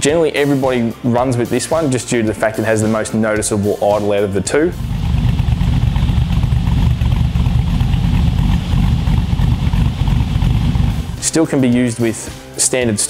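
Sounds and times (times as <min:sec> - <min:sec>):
car engine idling: 0:04.4 - 0:11.2.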